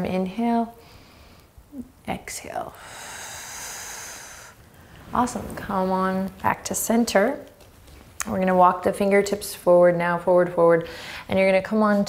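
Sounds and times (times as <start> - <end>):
woman exhaling: 2.7 - 5.9.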